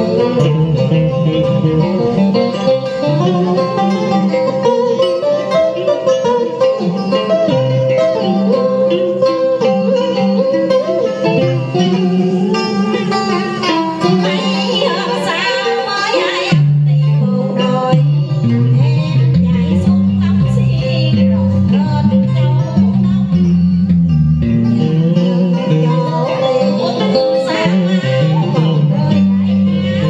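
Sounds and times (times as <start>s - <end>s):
repeating bass line: 0.0s - 4.9s, 18.0s - 30.0s
plucked strings melody: 0.0s - 30.0s.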